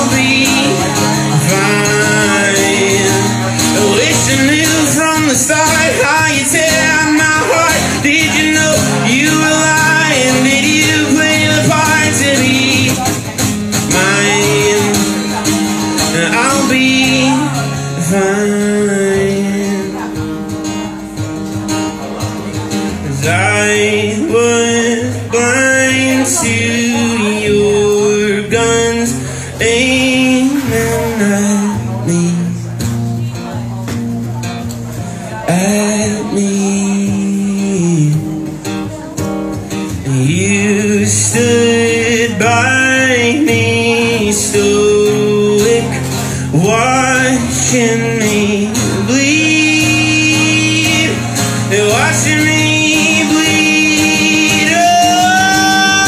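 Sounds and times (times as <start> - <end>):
man singing: 0.0 - 21.0, 22.0 - 33.8, 35.1 - 56.0
acoustic guitar playing: 0.0 - 56.0.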